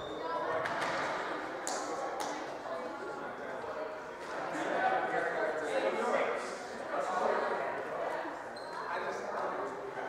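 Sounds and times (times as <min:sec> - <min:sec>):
chatter echoing in a hall: 0:00.0 - 0:10.0
brief high squeak: 0:08.6 - 0:08.9.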